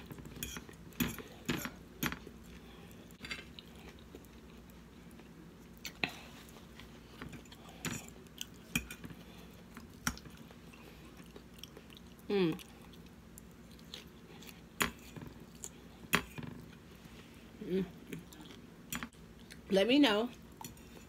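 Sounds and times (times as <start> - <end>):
chewing salad: 0.0 - 21.0.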